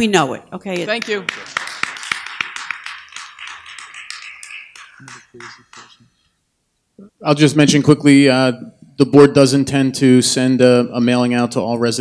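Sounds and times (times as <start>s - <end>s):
scattered hand clapping: 0.7s - 6.1s.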